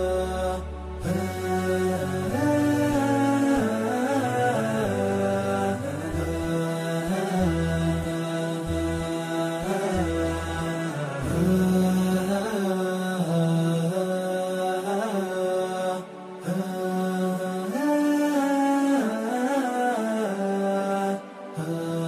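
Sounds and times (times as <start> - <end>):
low musical accompaniment: 0.0 - 22.0.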